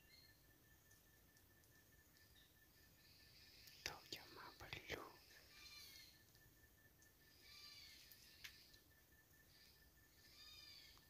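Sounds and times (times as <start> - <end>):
faint forest background: 0.0 - 11.0.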